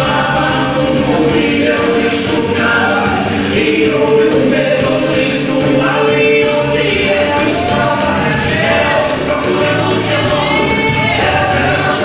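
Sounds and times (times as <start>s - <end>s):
gospel praise song: 0.0s - 12.0s.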